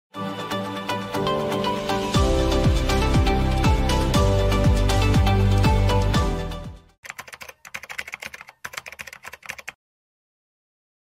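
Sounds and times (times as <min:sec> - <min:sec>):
computer keyboard typing: 0:07.0 - 0:09.8.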